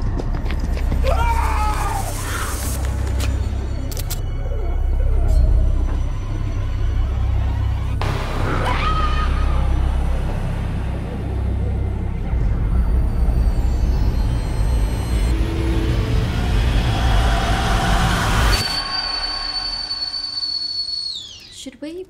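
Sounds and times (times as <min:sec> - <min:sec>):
heavy low rumble: 0:02.8 - 0:18.6
high-pitched ringing tone: 0:12.5 - 0:15.4, 0:18.4 - 0:21.7.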